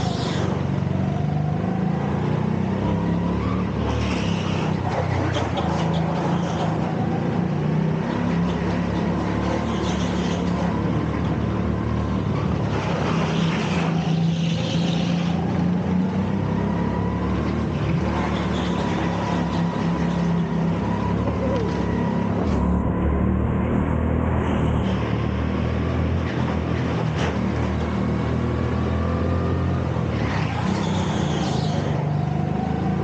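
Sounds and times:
go-kart engine running: 0:00.0 - 0:33.0.

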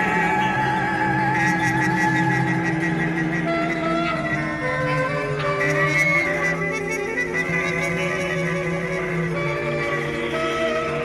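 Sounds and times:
band playing held notes: 0:00.0 - 0:11.0.

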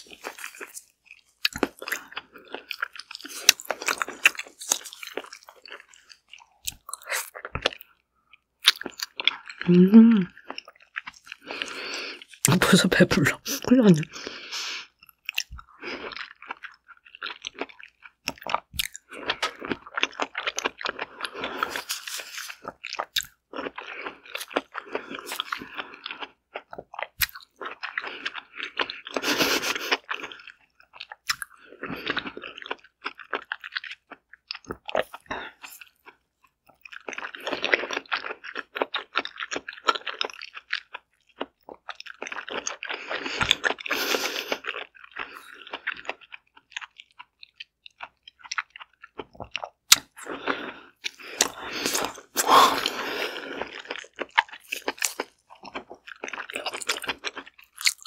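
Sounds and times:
biting and chewing: 0:00.0 - 0:12.6, 0:15.0 - 0:58.0.

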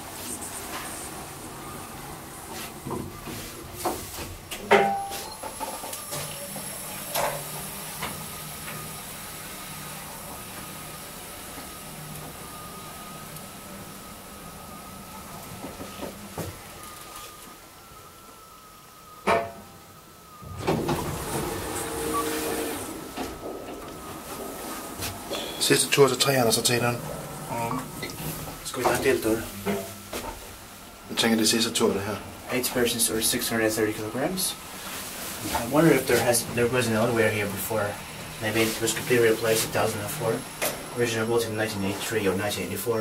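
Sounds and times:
elevator doors sliding open: 0:00.0 - 0:43.0
elevator high whine: 0:00.0 - 0:43.0
elevator doors shutting click: 0:19.2 - 0:30.0.

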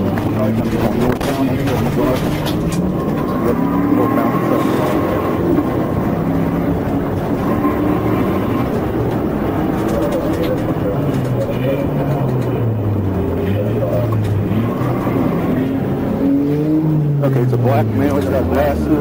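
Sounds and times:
car engine at highway speed: 0:00.0 - 0:19.0.

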